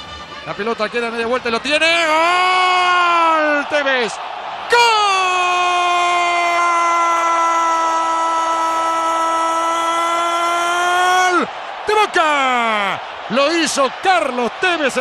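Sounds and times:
commentator shouting: 0:00.5 - 0:15.0.

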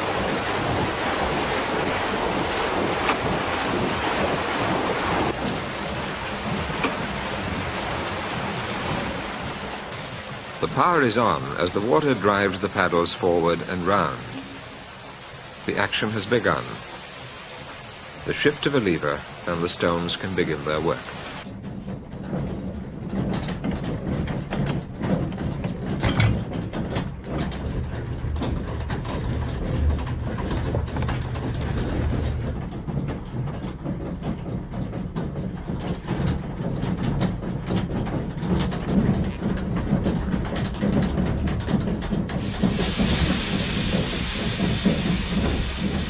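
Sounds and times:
water mill rumbling and clattering: 0:00.0 - 0:46.0
grain pouring into hopper: 0:42.4 - 0:46.0.

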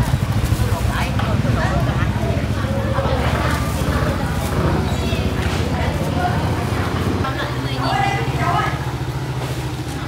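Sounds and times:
motorcycle engine idling: 0:00.0 - 0:10.0
voices talking: 0:00.0 - 0:10.0.

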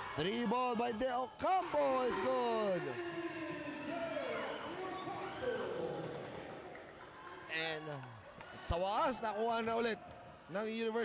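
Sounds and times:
spectators cheering and shouting: 0:00.0 - 0:07.0.

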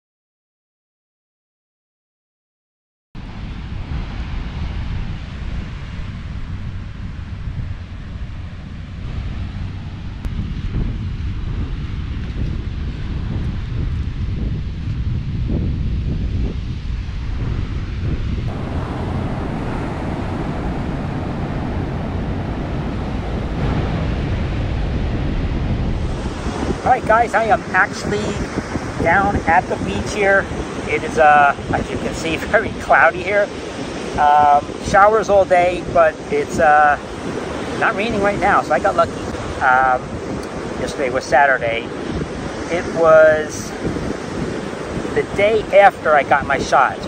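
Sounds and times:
ocean surf on beach: 0:03.2 - 0:47.0
wind buffeting microphone: 0:03.2 - 0:47.0.

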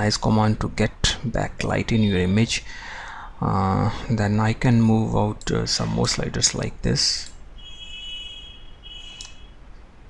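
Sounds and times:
faint steady hum: 0:00.0 - 0:10.0
computer mouse click: 0:09.2 - 0:09.4.

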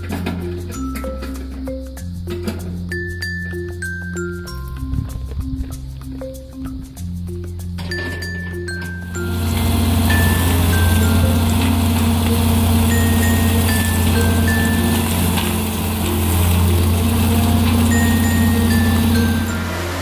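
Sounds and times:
background music with high notes: 0:00.0 - 0:20.0
bale spreader running: 0:08.0 - 0:20.0.

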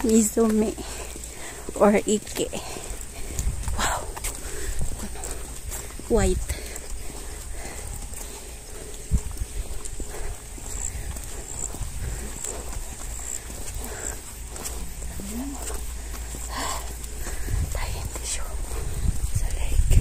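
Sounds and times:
footsteps on pavement: 0:00.0 - 0:20.0
low wind: 0:00.0 - 0:20.0
microphone handling rumble: 0:17.4 - 0:20.0.

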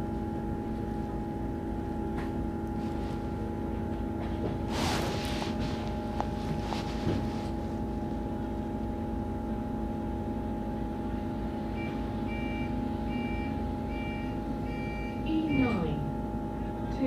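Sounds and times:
bus engine hum with whine: 0:00.0 - 0:17.0
bus door warning beeps: 0:11.7 - 0:16.1.

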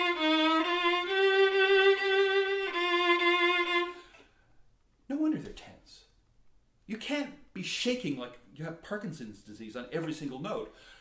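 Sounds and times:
bowed violin with vibrato: 0:00.0 - 0:04.1.

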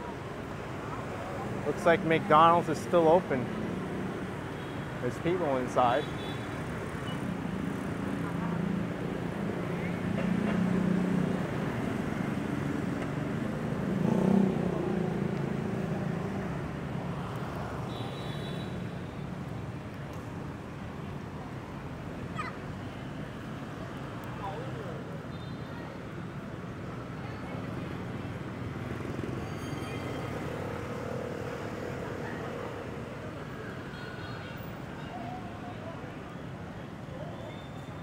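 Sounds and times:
traffic hum: 0:00.0 - 0:38.0
motorbike and car engines passing: 0:06.8 - 0:17.9, 0:26.3 - 0:33.6.

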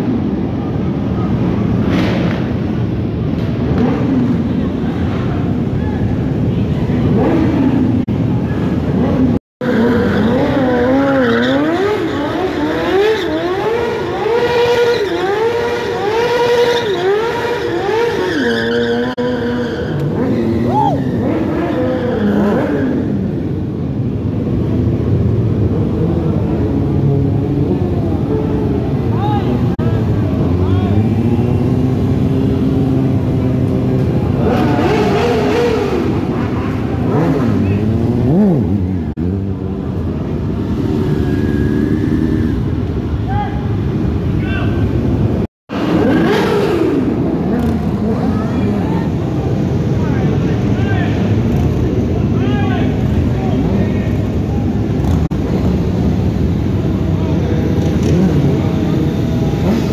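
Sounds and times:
motorcycle engines revving: 0:00.0 - 0:59.9.

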